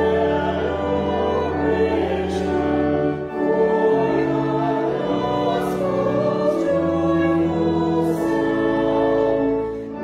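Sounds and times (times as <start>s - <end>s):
sustained accompaniment: 0.0s - 10.0s
voices singing a hymn: 0.0s - 10.0s.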